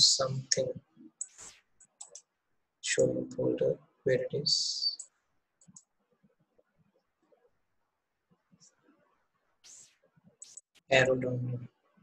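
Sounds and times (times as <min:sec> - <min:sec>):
computer mouse clicks: 0:01.2 - 0:02.3, 0:05.0 - 0:05.9, 0:09.7 - 0:10.8.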